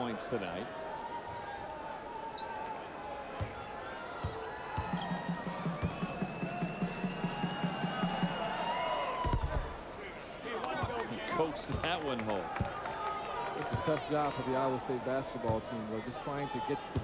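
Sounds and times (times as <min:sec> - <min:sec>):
arena crowd noise: 0:00.0 - 0:17.0
music with steady beat: 0:04.8 - 0:08.6.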